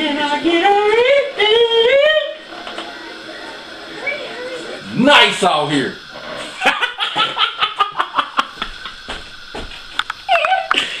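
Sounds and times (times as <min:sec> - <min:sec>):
man laughing heartily: 0:06.6 - 0:09.0.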